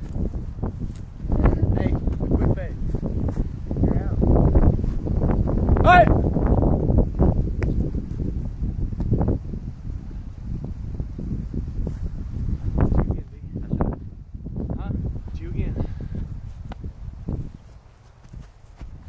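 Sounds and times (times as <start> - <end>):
wind rumbling on microphone: 0.0 - 19.0
high-pitched yell: 5.8 - 6.1.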